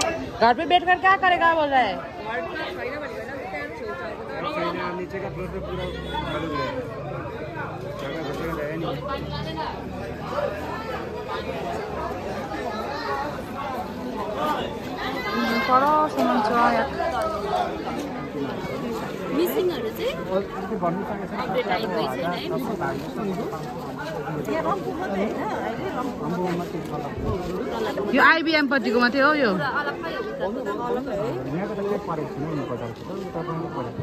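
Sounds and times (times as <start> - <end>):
crowd chatter: 0.0 - 34.0.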